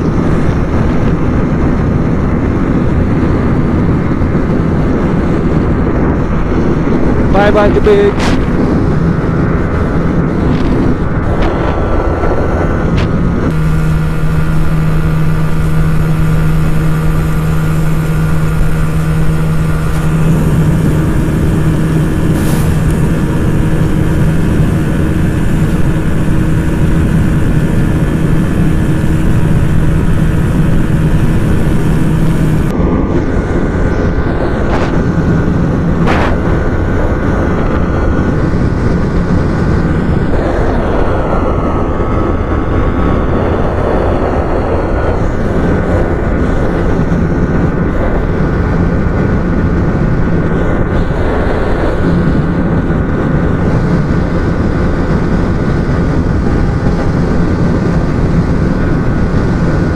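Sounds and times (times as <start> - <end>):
motorcycle engine at high speed: 0.0 - 59.9
wind rush: 0.0 - 59.9.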